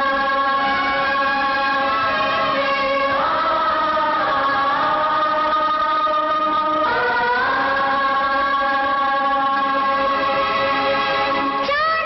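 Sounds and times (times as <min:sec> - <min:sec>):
voices singing held notes: 0:00.0 - 0:11.8.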